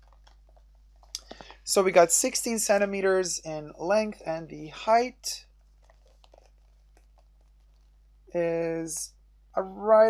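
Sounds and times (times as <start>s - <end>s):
canvas pouch clicks and rustles: 5.6s - 7.9s.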